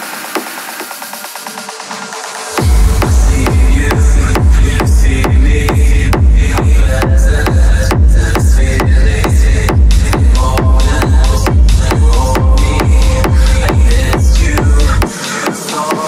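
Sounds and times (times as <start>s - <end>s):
repeating synth riff: 1.1s - 7.8s
heavy kick drum: 2.4s - 16.0s.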